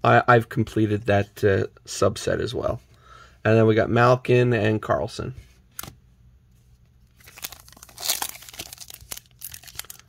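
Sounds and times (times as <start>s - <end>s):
wrapper crinkling and tearing: 7.2s - 10.0s.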